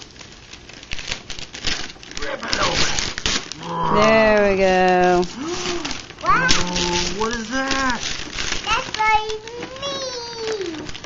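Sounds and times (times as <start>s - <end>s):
wrapping paper tearing: 0.0s - 11.0s
person speaking: 3.6s - 8.1s.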